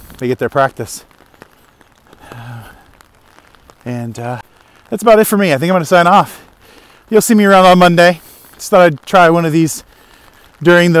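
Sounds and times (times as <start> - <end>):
light rain pattering: 0.0 - 11.0.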